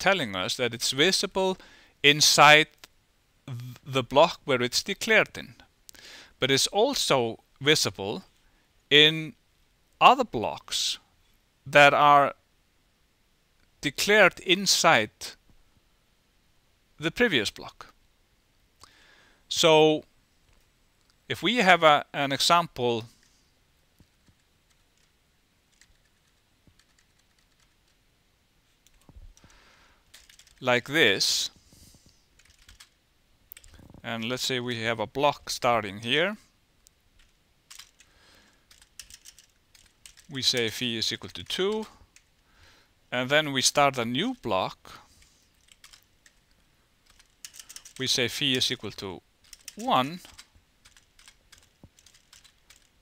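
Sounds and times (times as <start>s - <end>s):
keyboard keys clicking: 25.7s - 28.0s, 30.1s - 30.6s, 32.4s - 32.9s, 38.7s - 40.7s, 45.6s - 46.4s, 47.0s - 48.0s, 49.4s - 52.9s.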